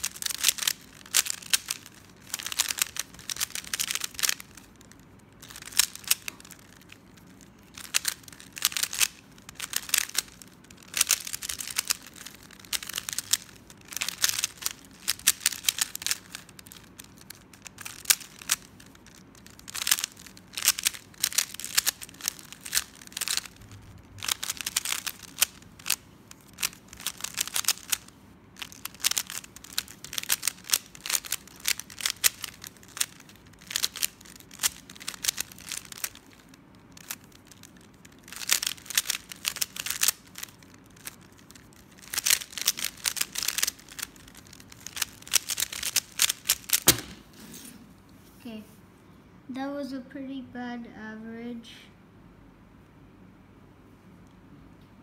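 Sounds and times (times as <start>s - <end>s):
puzzle cube clicking: 0.0s - 47.3s.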